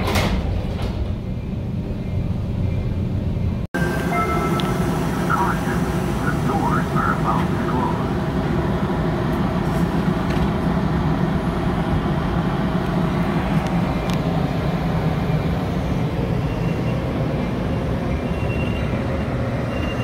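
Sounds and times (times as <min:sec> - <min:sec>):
train sliding doors closing: 0:00.0 - 0:01.8, 0:03.8 - 0:07.7, 0:09.2 - 0:20.0
train diesel rumble: 0:00.0 - 0:20.0.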